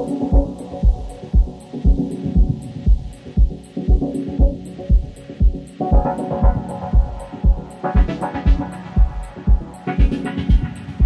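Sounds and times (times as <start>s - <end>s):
hi-hat ticks: 0.0s - 11.0s
kick drum: 0.0s - 11.0s.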